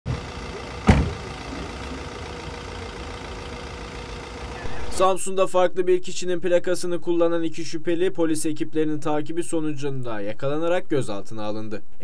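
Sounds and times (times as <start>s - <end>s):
car door slamming: 0.1s - 1.6s
low street traffic: 0.1s - 5.1s.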